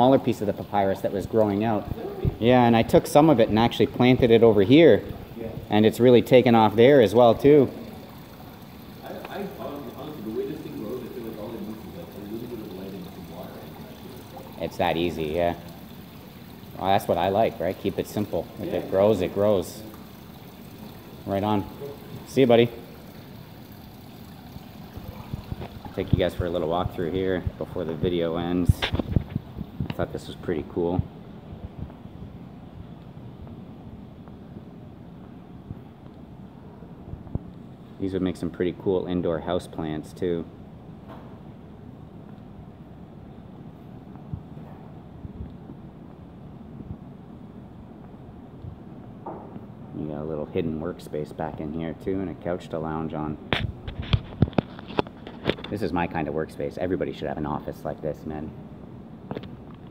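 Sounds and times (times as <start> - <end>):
stream trickling: 0.0 - 31.2, 50.5 - 58.3.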